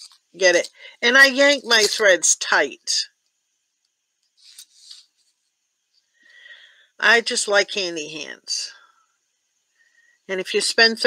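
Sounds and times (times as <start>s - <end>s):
hands rubbing metal needles and card: 4.2s - 5.5s.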